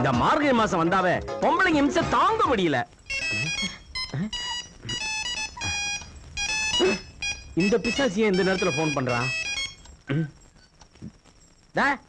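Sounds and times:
electronic beeping melody: 3.1 - 9.9.

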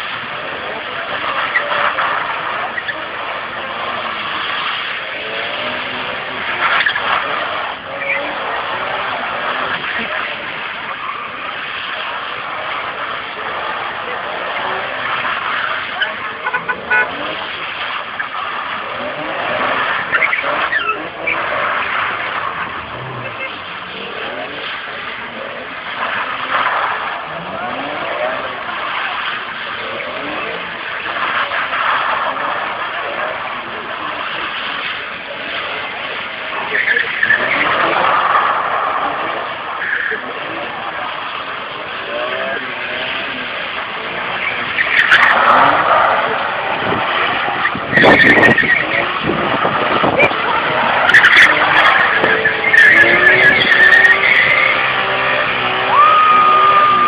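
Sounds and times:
car engine revving: 0.0 - 57.0
tyres squealing: 0.0 - 57.0.

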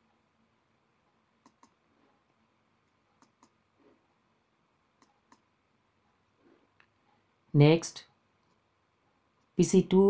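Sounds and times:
computer mouse clicking: 1.4 - 1.8, 2.8 - 3.6, 5.0 - 5.5.

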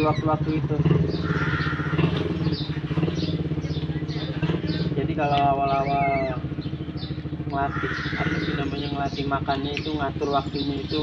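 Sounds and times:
low mechanical drone: 0.0 - 11.0
baby otter chirping: 1.2 - 2.7.

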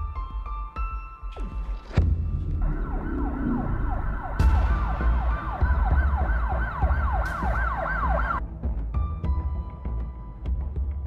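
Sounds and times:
deep low rumble: 2.0 - 6.3
emergency siren yelping: 2.5 - 8.4.

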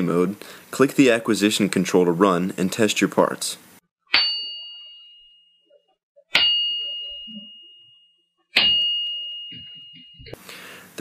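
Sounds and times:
metal part struck and ringing: 4.1 - 10.4.

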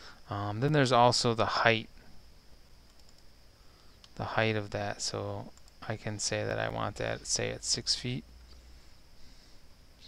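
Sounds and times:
computer mouse clicks: 2.8 - 4.2, 5.5 - 5.8.

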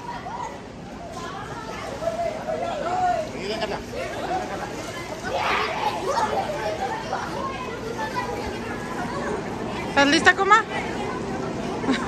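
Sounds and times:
children and adults chattering: 0.0 - 12.0.

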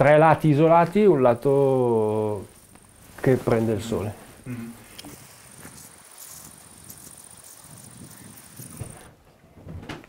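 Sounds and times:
faint steady high whine: 0.0 - 9.4
wind rumbling on microphone: 5.2 - 9.1.

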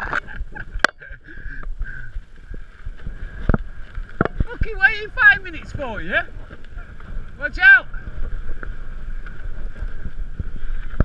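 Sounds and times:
bike rattling: 0.0 - 11.0
bike tyres over rough ground: 0.0 - 11.0
wind on microphone: 0.0 - 11.0.

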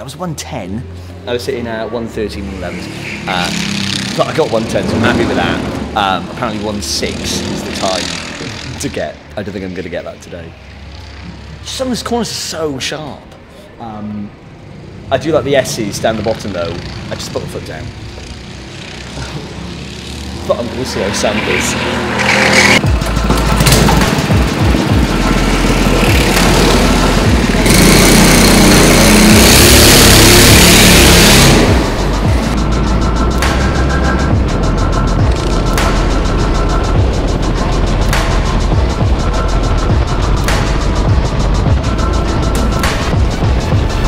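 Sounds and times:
kart engines running loudly: 3.0 - 8.9, 16.1 - 33.5
music with steady beat: 22.8 - 44.0.

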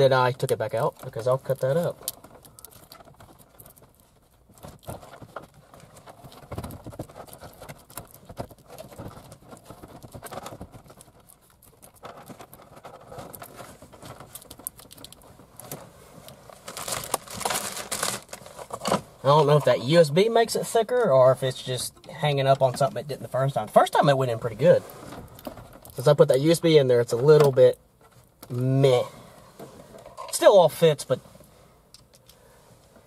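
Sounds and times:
cables rustling: 0.0 - 33.0
plastic knocks and scrapes: 1.4 - 15.8.

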